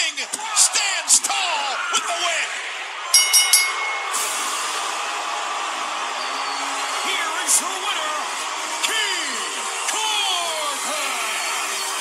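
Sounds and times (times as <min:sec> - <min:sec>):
crowd noise: 0:00.0 - 0:12.0
ring bell struck: 0:03.2 - 0:04.5.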